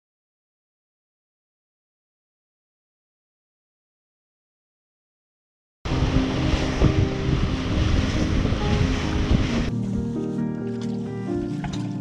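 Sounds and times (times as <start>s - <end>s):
water rushing past boat hull: 5.9s - 10.1s
wind buffeting microphone: 5.9s - 10.1s
soft melody: 5.9s - 12.0s.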